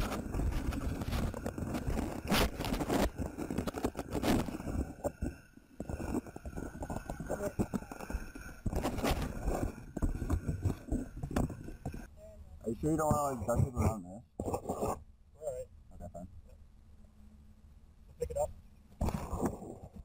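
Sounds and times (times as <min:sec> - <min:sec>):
knocks and scrapes near microphone: 0:00.0 - 0:12.1, 0:12.9 - 0:15.1.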